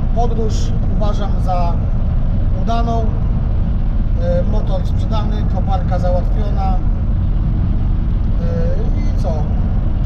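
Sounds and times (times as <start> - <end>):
road and engine rumble: 0.0 - 10.0.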